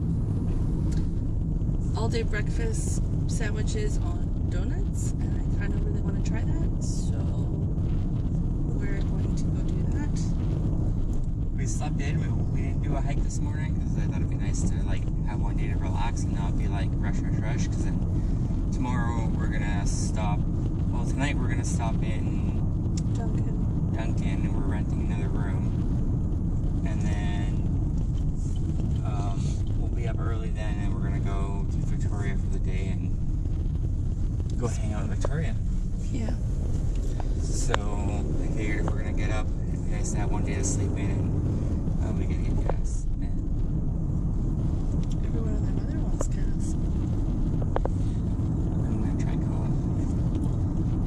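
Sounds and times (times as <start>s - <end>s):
car interior road rumble: 0.0s - 51.0s
woman talking: 2.0s - 7.5s, 36.1s - 36.4s.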